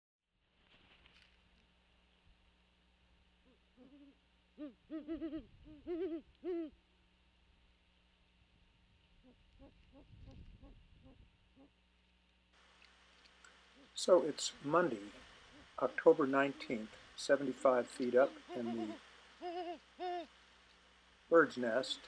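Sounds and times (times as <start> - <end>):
owl hooting: 3.4 - 6.8, 9.2 - 11.8, 13.6 - 20.4.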